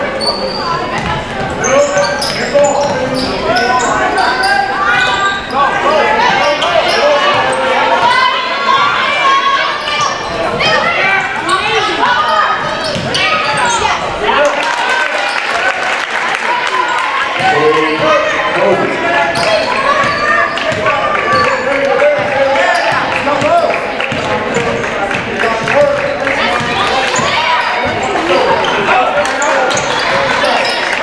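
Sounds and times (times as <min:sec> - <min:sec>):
echoing voices: 0:00.0 - 0:31.0.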